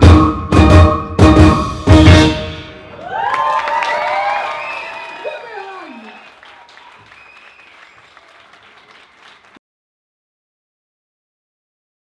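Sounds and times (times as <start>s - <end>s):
audience applauding: 2.9s - 9.6s
crowd cheering and whooping: 2.9s - 9.6s.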